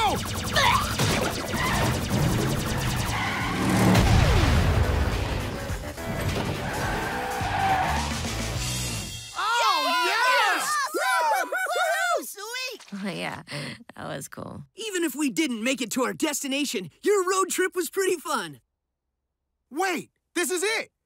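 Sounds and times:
cartoon vehicle engines running: 0.0s - 4.8s
action music: 0.0s - 9.9s.

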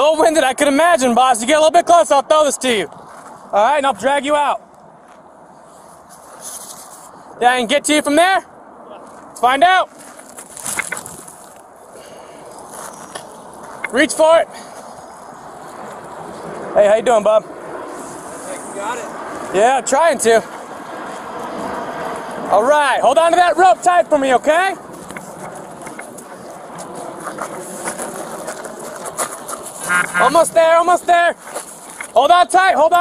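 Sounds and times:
camera handling noise: 10.6s - 11.4s, 25.0s - 26.2s
wind rushing: 12.4s - 32.1s.

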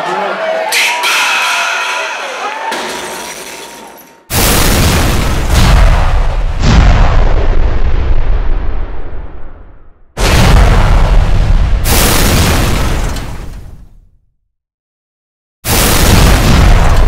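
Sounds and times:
crowd noise: 0.0s - 4.2s
deep boom sound effect: 4.3s - 13.8s, 15.8s - 17.0s.

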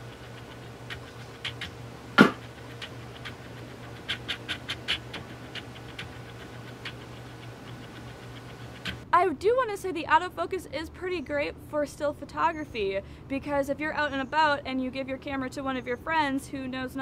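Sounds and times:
steady low hum: 0.0s - 16.7s
knock: 2.2s - 2.4s.

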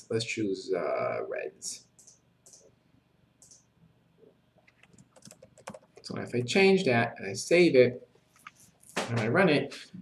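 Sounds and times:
keyboard typing clicks: 3.4s - 3.6s, 4.7s - 6.1s.

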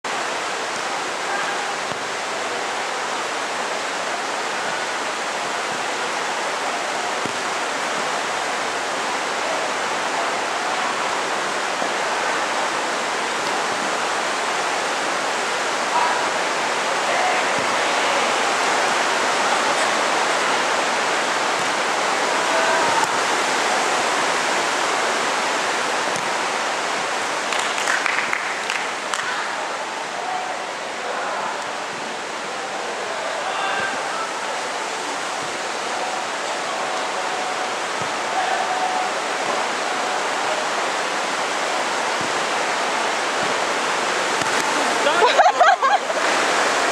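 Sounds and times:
distant shouts: 22.2s - 23.4s, 33.0s - 34.6s, 36.7s - 40.6s.

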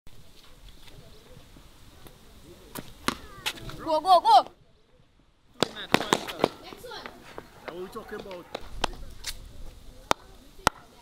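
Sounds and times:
distant voices: 0.1s - 11.0s.

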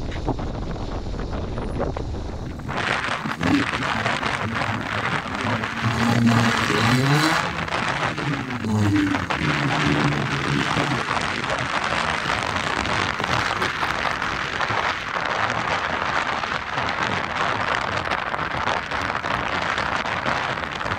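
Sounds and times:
strong wind on microphone: 0.0s - 20.9s
tires spinning in sand: 1.2s - 20.9s
buggy engine revving: 2.5s - 15.0s.

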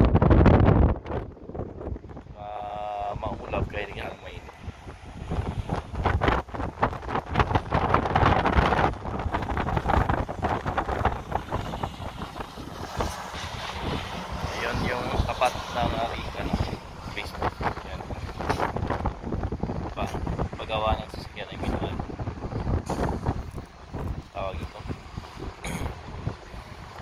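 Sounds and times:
wind buffeting microphone: 0.0s - 27.0s.

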